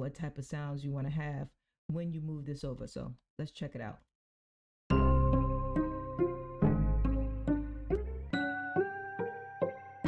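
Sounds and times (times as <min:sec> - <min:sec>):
low bass line: 0:04.9 - 0:08.4
synthesized piano melody: 0:04.9 - 0:10.0.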